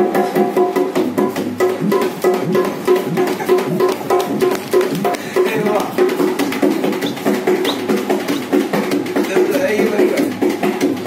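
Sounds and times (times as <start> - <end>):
hand drum played fast: 0.0 - 11.0.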